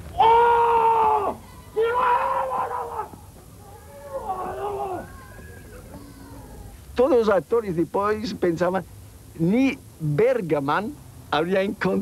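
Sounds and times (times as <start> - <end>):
person howl-like vocal cry: 3.7 - 5.1.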